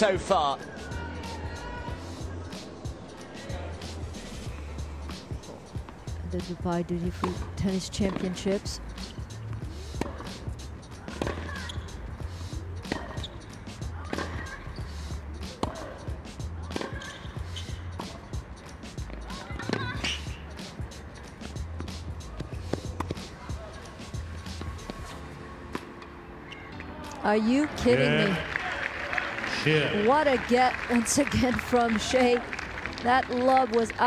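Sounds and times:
tennis ball hit by racquet: 10.0s - 10.4s, 11.1s - 11.7s, 12.8s - 13.3s, 15.5s - 15.9s, 16.8s - 17.1s.

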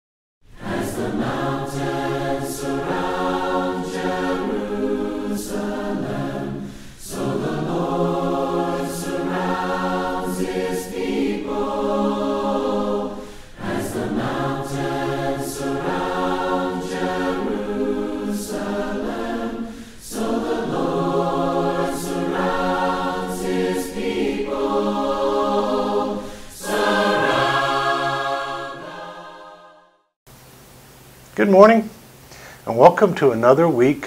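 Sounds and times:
choir singing a hymn: 0.5s - 30.1s.

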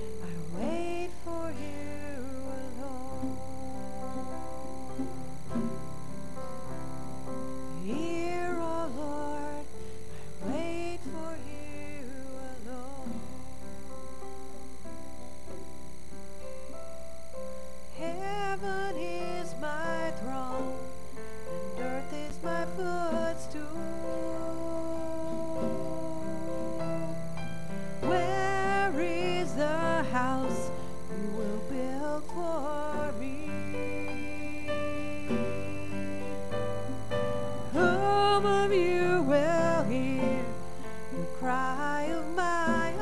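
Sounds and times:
person singing: 0.0s - 14.8s, 17.9s - 43.0s
guitar chords: 0.0s - 43.0s
keyboard chords: 0.0s - 43.0s.

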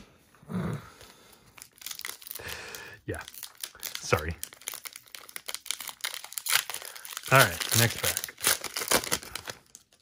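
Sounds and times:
plastic wrapper crinkling and tearing: 1.5s - 10.0s.

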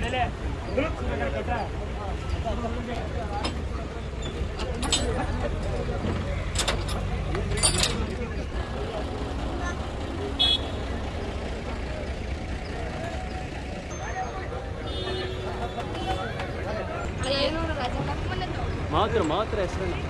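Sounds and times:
crowd voices: 0.0s - 20.0s
lorry engine idling: 0.0s - 20.0s.

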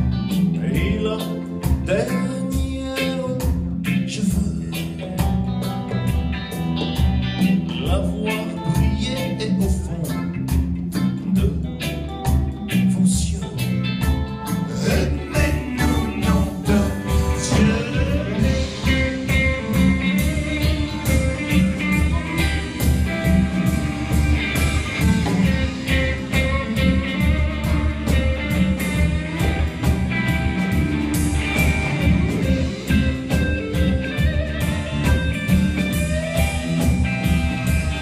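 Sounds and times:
drum kit steady beat: 0.0s - 38.0s
electric bass: 0.0s - 38.0s
electric guitars: 0.0s - 38.0s.

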